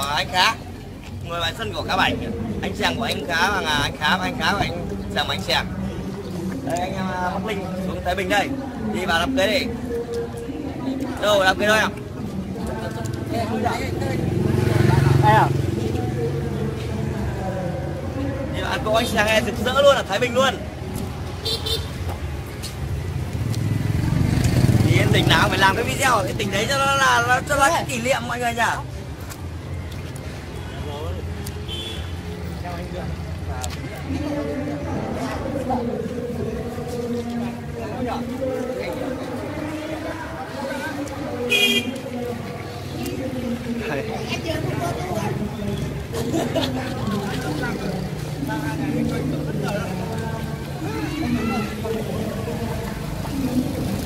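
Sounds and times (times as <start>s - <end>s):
people talking: 24.0s - 28.9s, 32.6s - 54.0s
vehicle engine humming: 28.8s - 54.0s.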